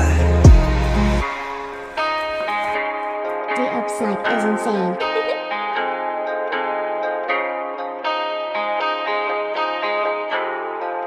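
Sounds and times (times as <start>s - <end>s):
plucked guitar music: 0.0s - 11.0s.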